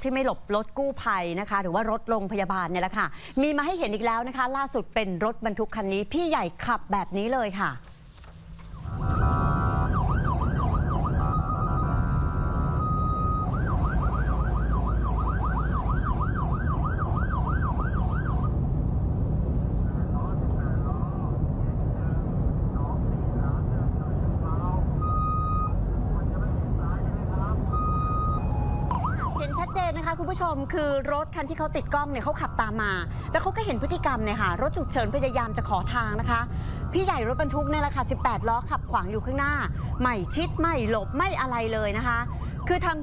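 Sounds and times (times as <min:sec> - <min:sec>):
road and engine rumble: 0:05.6 - 0:43.0
ambulance siren sweeping: 0:08.7 - 0:18.6, 0:24.3 - 0:30.8, 0:31.6 - 0:43.0
short steady siren tones: 0:08.8 - 0:18.6, 0:24.6 - 0:25.9, 0:27.6 - 0:30.2, 0:32.3 - 0:38.8.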